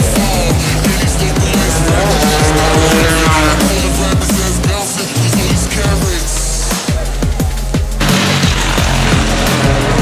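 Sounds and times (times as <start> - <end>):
drum and bass music: 0.0 - 10.0.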